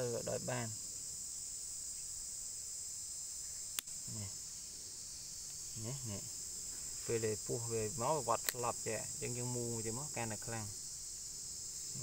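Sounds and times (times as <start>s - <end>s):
high drone of insects: 0.0s - 12.0s.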